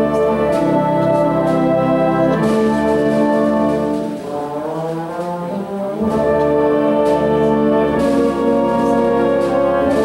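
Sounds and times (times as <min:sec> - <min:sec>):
wind band playing: 0:00.0 - 0:10.0.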